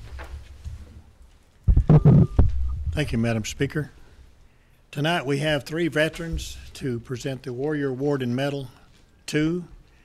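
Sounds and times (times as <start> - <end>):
microphone handling thumps: 1.7 - 3.5.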